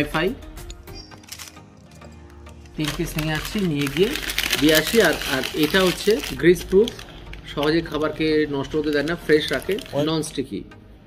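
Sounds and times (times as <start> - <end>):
paper wrap crinkling: 1.1 - 10.3.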